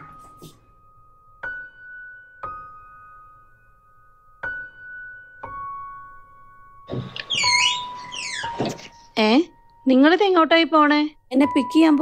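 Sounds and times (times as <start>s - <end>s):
door hinges creaking: 6.9s - 9.0s.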